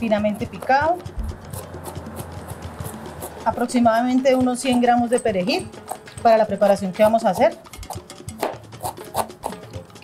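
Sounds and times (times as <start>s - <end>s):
background music: 0.0s - 10.0s
knife chopping on cutting board: 7.0s - 9.6s.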